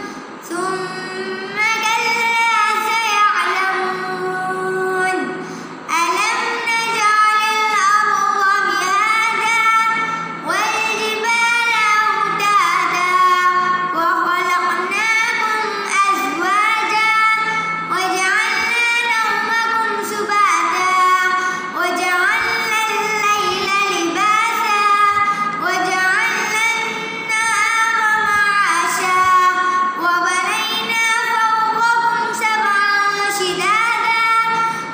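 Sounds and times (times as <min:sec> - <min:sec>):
boy chanting recitation: 0:00.0 - 0:34.9.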